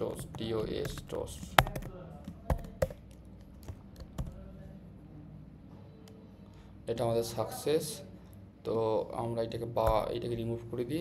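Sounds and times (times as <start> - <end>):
keyboard keys clicking: 0.0 - 4.4.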